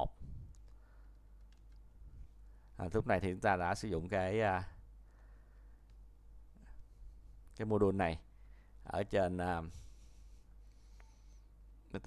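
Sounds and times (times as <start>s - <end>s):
computer keyboard clicks: 1.4s - 1.8s.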